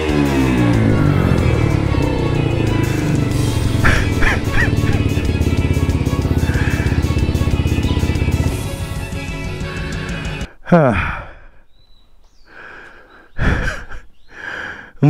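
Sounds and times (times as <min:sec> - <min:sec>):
music playing: 0:00.0 - 0:10.5
small engine idling: 0:00.0 - 0:10.5.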